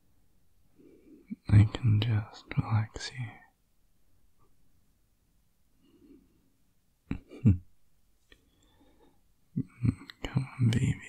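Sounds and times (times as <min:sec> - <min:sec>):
man whispering: 0:01.0 - 0:03.6, 0:09.6 - 0:11.0
man laughing softly: 0:07.1 - 0:07.8.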